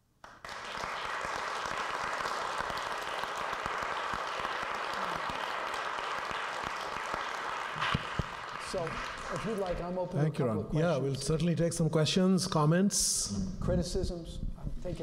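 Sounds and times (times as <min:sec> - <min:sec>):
audience applauding: 0:00.2 - 0:10.0.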